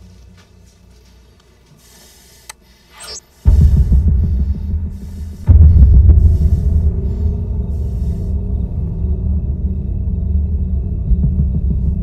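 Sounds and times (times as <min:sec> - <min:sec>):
deep throbbing drone: 0:03.0 - 0:12.0.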